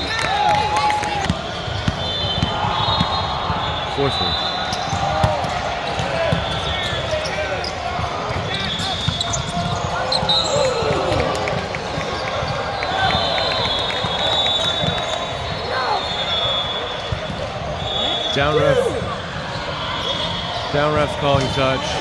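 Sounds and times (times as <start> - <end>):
echoing hubbub of voices: 0.0 - 22.0.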